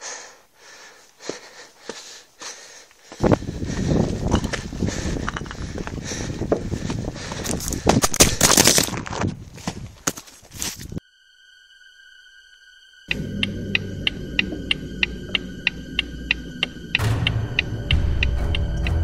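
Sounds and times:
heavy breathing: 0.0s - 8.4s.

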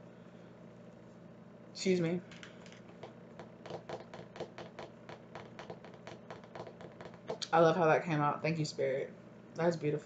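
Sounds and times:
keyboard typing: 2.4s - 7.4s.

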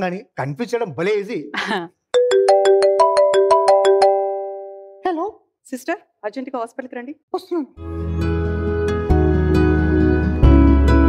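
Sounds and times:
marimba-like phone ringtone: 2.2s - 5.0s.

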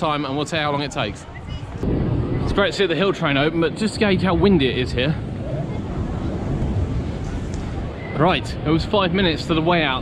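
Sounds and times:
wind buffeting microphone: 0.2s - 10.0s.

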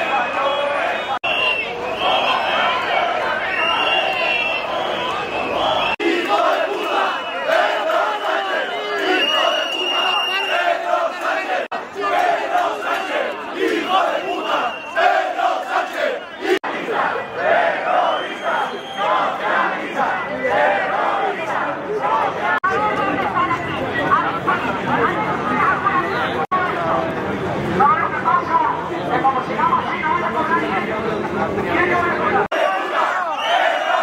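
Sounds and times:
crowd of protesters shouting: 0.0s - 26.5s, 31.6s - 34.0s.

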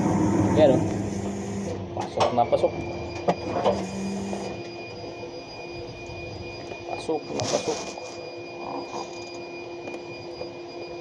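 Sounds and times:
low hum: 0.0s - 2.0s
forklift machine whine: 0.0s - 11.0s
thin high tone: 2.5s - 11.0s.

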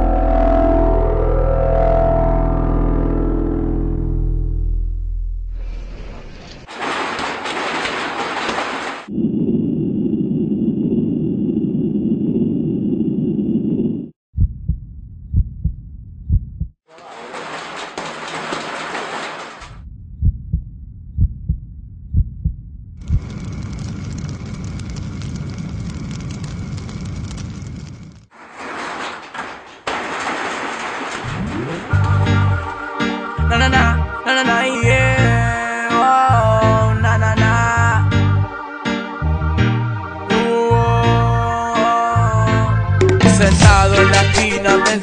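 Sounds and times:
low drone: 0.0s - 6.6s, 9.1s - 14.1s
short deep thumps: 14.3s - 16.8s, 19.8s - 23.0s.

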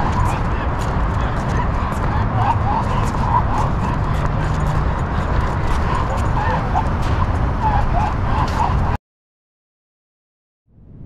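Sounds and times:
steady low rumble: 0.0s - 9.0s.

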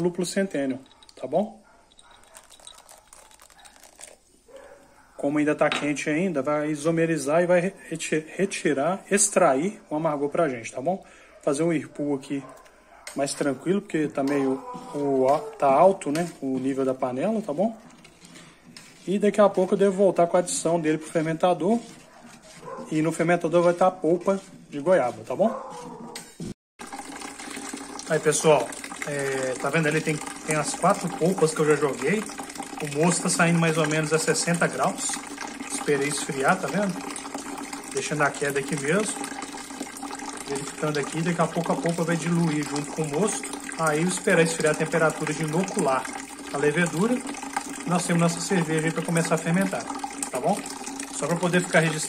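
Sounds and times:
hot liquid crackling and fizzing: 1.8s - 4.9s, 26.8s - 52.0s.

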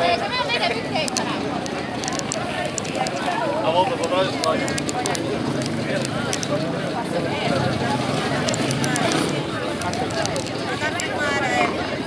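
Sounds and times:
people chattering: 0.0s - 12.0s
small clicks: 1.0s - 6.6s, 8.3s - 11.2s.

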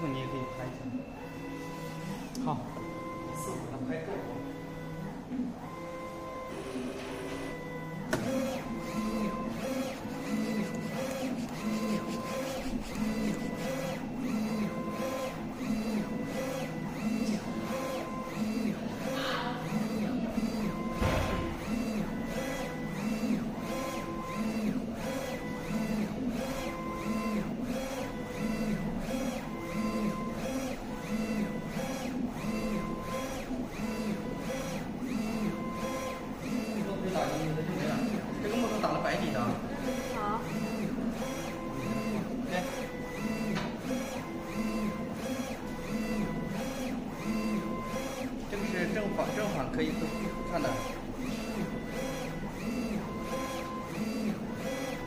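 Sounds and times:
printer carriage shuttling: 20.9s - 21.7s
low thump: 21.0s - 21.5s.

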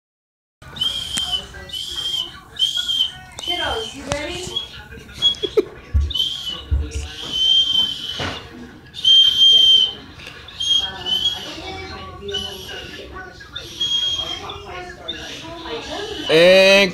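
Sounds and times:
toy whistle toots: 0.8s - 5.5s, 6.2s - 13.0s, 13.6s - 16.6s.

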